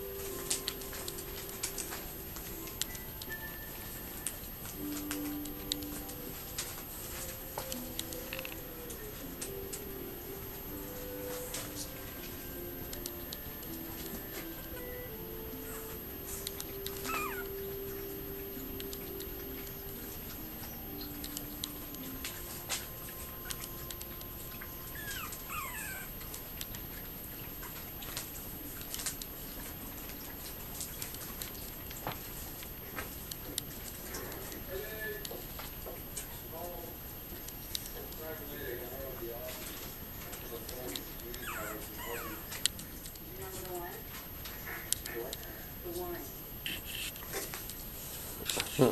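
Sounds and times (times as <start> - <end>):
puppy whining: 0.0 - 31.2, 40.4 - 45.3
puppy whimpering: 13.9 - 18.2, 23.4 - 27.7, 40.9 - 42.9.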